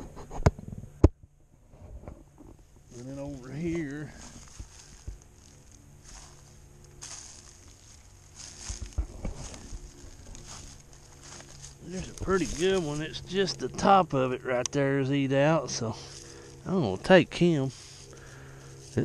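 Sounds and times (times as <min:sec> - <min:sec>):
twigs ticking: 0:02.8 - 0:14.9, 0:16.1 - 0:16.7, 0:17.7 - 0:19.0
footsteps in dry leaves: 0:02.9 - 0:14.2, 0:15.8 - 0:19.0.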